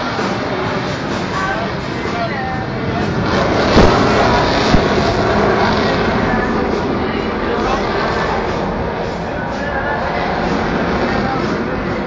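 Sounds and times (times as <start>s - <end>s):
jet engines in flight: 0.0s - 12.0s.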